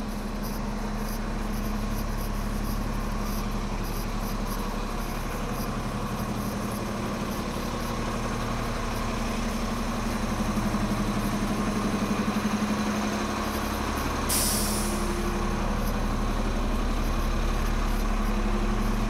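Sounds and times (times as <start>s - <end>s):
bus engine idling: 0.0s - 19.0s
air brake hiss: 14.3s - 15.3s.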